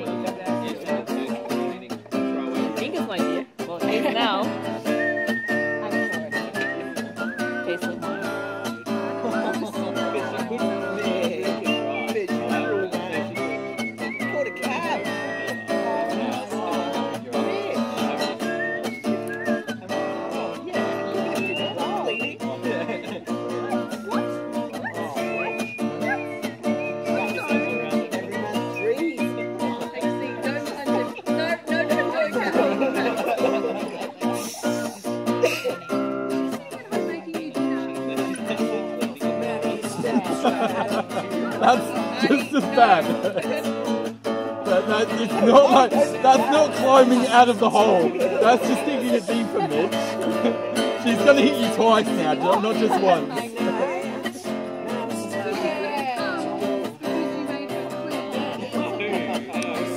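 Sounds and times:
acoustic guitar playing: 0:00.0 - 0:59.9.

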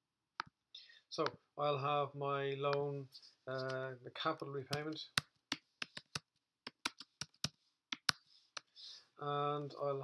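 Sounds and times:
keyboard typing: 0:04.7 - 0:08.7.

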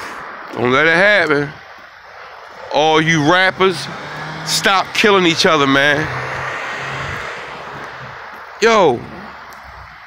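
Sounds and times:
passing vehicle: 0:00.0 - 0:10.0.

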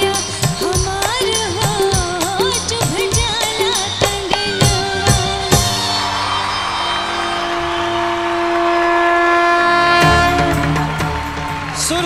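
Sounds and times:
drumming: 0:00.0 - 0:08.9, 0:09.8 - 0:12.0
band and singer holding final note: 0:05.8 - 0:12.0.

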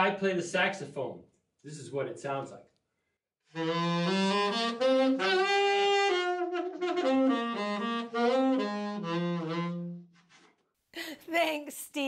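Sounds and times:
saxophone solo phrase: 0:03.5 - 0:10.1.

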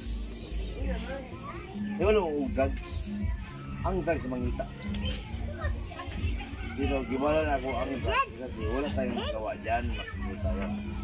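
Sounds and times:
children talking and calling: 0:00.0 - 0:11.0.

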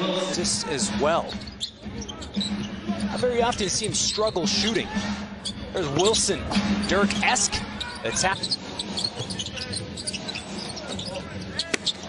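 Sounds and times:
faint voices: 0:00.0 - 0:12.0
sneakers squeaking: 0:01.2 - 0:12.0.

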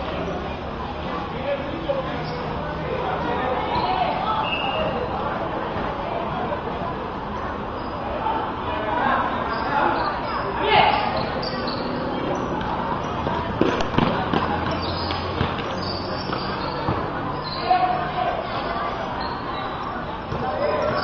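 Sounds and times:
basketball bouncing on concrete: 0:12.6 - 0:17.0.

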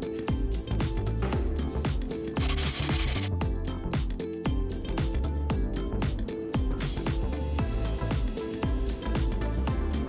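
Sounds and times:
background music with steady beat: 0:00.0 - 0:10.0
paper-tearing transition effect: 0:02.4 - 0:03.3.

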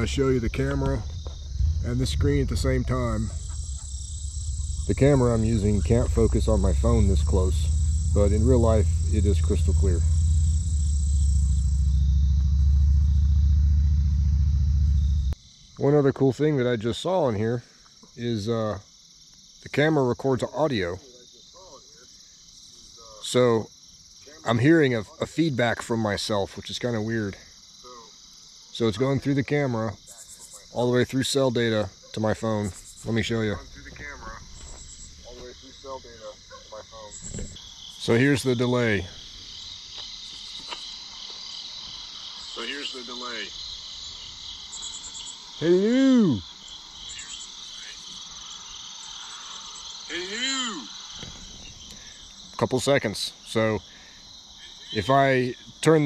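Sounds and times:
low mechanical rumble: 0:00.0 - 0:15.4, 0:33.0 - 0:35.9
crickets trilling: 0:00.0 - 0:56.0.

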